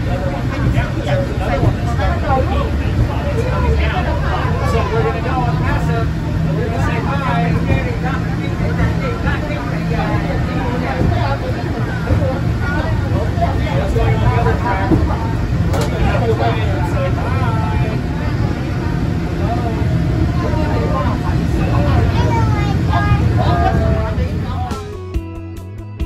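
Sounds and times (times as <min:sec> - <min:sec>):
funicular car low hum: 0:00.0 - 0:25.0
people chatting: 0:00.0 - 0:25.0.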